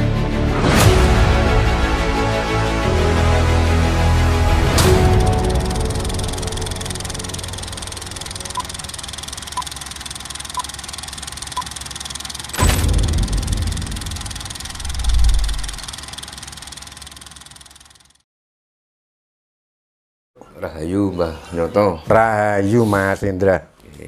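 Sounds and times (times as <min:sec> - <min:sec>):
film projector rattle: 0:04.8 - 0:18.2
short beeps: 0:08.5 - 0:08.9.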